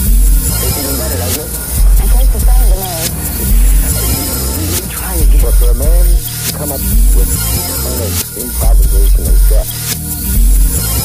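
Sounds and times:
hip hop track with vocals: 0:00.0 - 0:11.0.

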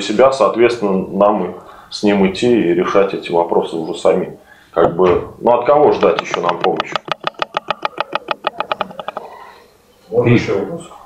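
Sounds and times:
hand clapping: 0:06.0 - 0:09.2.

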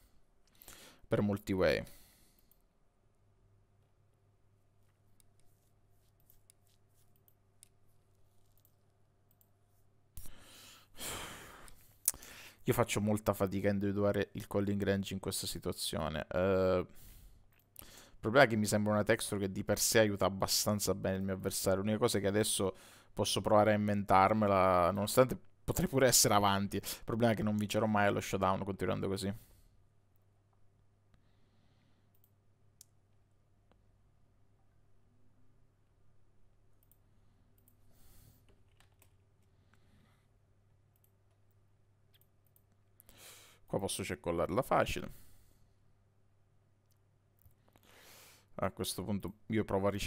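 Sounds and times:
computer mouse clicks: 0:08.4 - 0:09.5, 0:36.8 - 0:37.0, 0:38.4 - 0:39.2.

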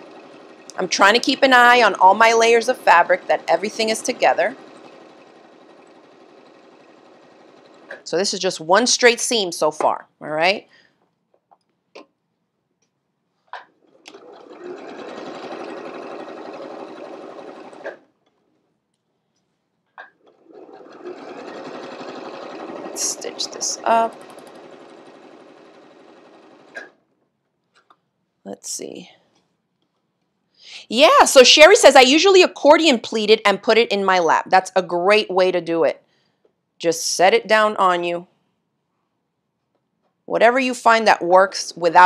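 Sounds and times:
sewing machine running: 0:00.0 - 0:08.4, 0:13.8 - 0:18.1, 0:20.2 - 0:27.0.

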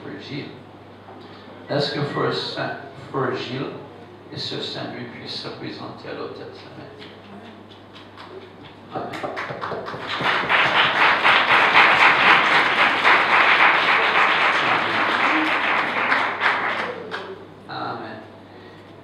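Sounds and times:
congregation applauding: 0:07.7 - 0:17.5.

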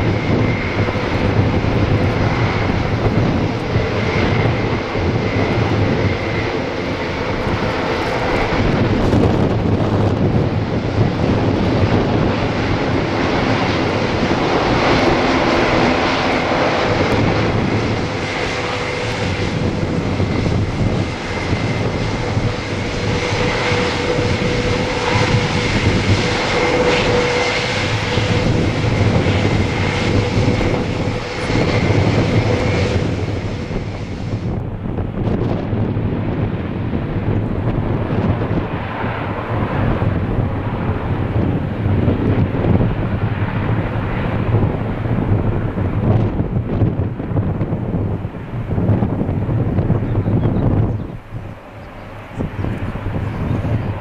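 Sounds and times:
propeller drone with high whine: 0:00.0 - 0:54.0.

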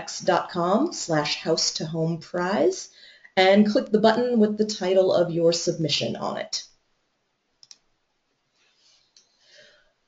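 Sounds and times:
faint clicks: 0:07.6 - 0:07.9.

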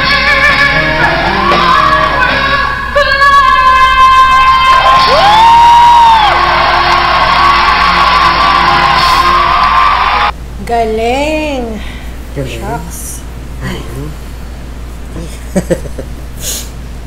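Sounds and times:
live band playing: 0:00.0 - 0:02.6
woman singing long high note: 0:00.0 - 0:05.4
audience cheering and whooping: 0:03.4 - 0:10.3.

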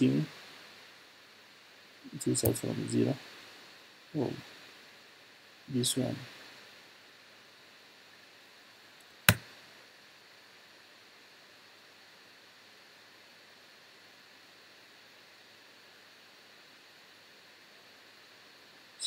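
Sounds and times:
faint steady hiss: 0:00.0 - 0:19.0.

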